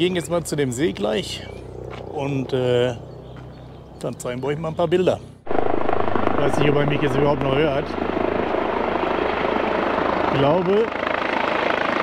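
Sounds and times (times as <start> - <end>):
helicopter rotor chop: 5.4 - 12.0.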